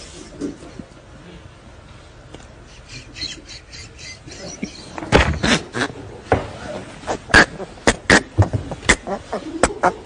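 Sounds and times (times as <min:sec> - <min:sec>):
animal squawking chirps: 0:02.8 - 0:05.9.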